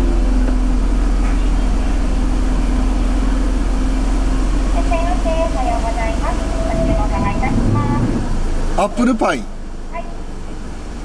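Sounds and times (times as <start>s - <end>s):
car idling rumble inside cabin: 0.0s - 11.0s.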